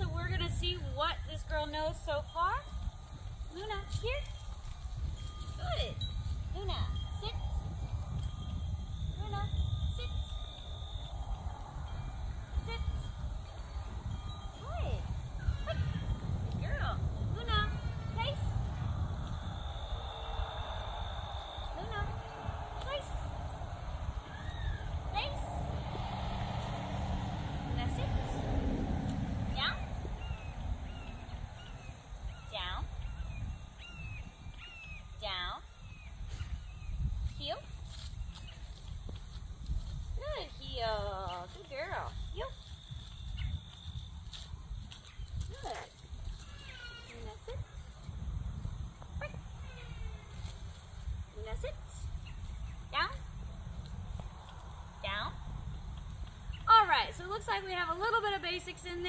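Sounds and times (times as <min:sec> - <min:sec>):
wind rumble on microphone: 0:00.0 - 0:59.0
birds chirping: 0:05.2 - 0:25.3, 0:29.5 - 0:39.0.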